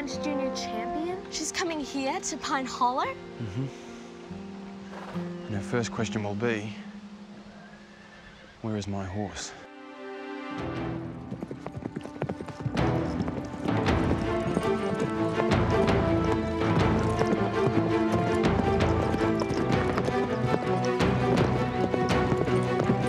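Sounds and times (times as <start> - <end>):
background music with held chords: 0.0 - 23.0
horse hoofbeats galloping on grass: 11.0 - 23.0.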